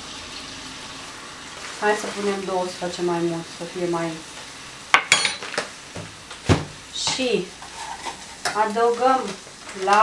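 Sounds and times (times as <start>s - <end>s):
utensils knocking on saucepan: 4.9s - 5.7s.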